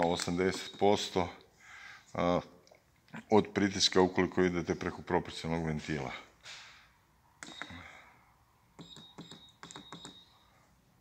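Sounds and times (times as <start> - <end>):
short high beeps: 7.4 - 7.9, 8.8 - 10.5
keypad button clicks: 8.8 - 10.2.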